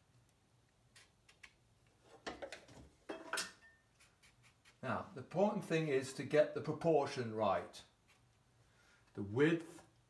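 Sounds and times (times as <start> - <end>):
paintbrush scrubbing: 4.0 - 4.8.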